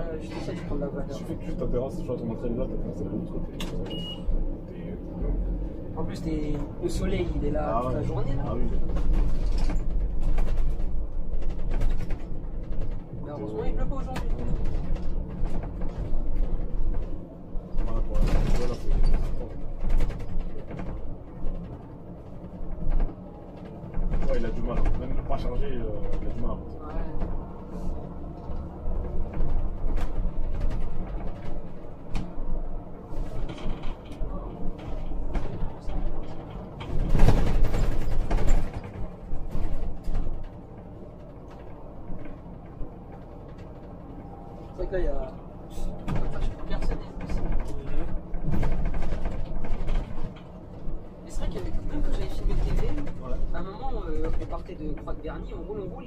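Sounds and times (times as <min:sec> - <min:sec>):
faint conversation: 0:00.0 - 0:09.4, 0:12.9 - 0:31.8, 0:33.9 - 0:37.1, 0:38.4 - 0:56.0
bus engine and road rumble: 0:00.0 - 0:56.0.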